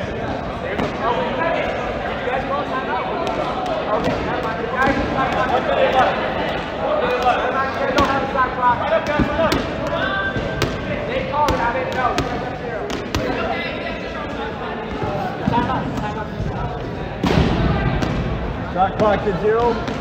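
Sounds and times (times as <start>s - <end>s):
indistinct chatter: 0.0s - 20.0s
balls bouncing on gym floor: 8.9s - 13.5s, 14.8s - 20.0s.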